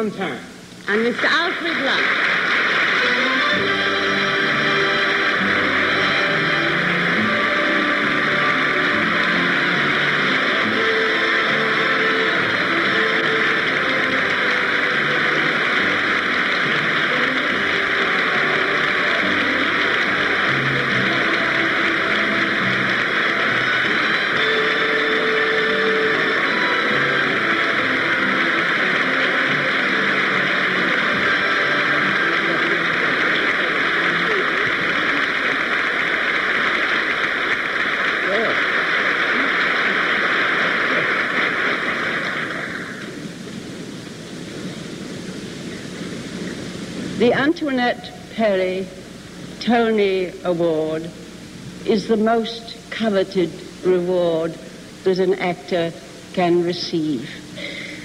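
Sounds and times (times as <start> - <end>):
band playing walk-on music: 0.5 - 47.5
audience applause: 0.9 - 47.6, 57.6 - 58.0.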